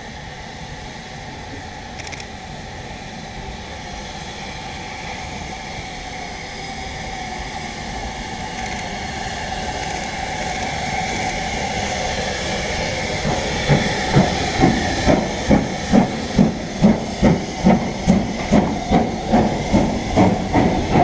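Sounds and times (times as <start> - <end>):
steam locomotive hissing and running: 0.0 - 21.0.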